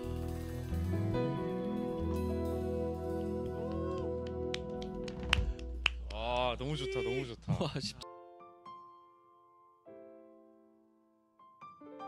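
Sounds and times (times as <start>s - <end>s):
hand claps: 3.4s - 6.6s.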